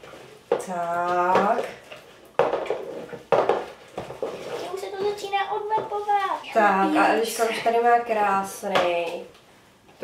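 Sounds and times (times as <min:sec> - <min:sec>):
utensil stirring slime: 0:00.0 - 0:07.0.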